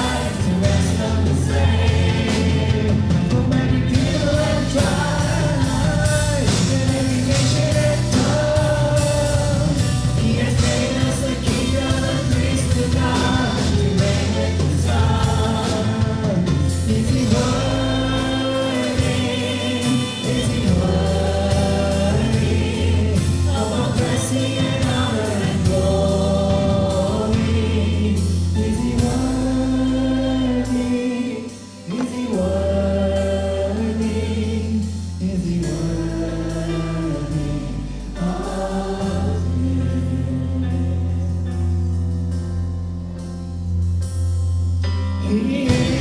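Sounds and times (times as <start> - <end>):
congregation singing with band: 0.0 - 41.9, 45.2 - 46.0.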